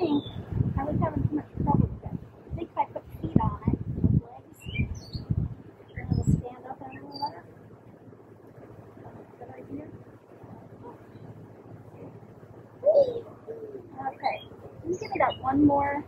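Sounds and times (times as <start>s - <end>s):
high bird chirps: 4.6s - 7.4s.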